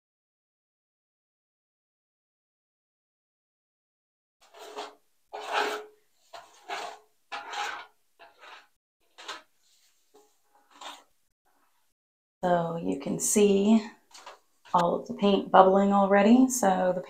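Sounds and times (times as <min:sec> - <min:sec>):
brush rubbing swishes: 0:04.4 - 0:11.8.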